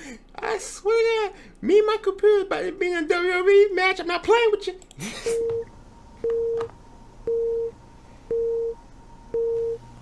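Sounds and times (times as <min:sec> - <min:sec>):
telephone busy signal beeps: 0:07.3 - 0:09.8.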